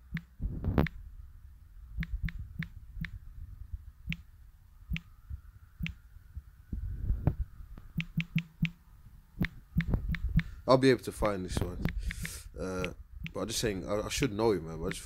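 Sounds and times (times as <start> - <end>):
low rumble: 0.0 - 15.0
typing taps on smartphone keyboard: 8.0 - 8.8, 9.4 - 10.5, 11.8 - 13.4.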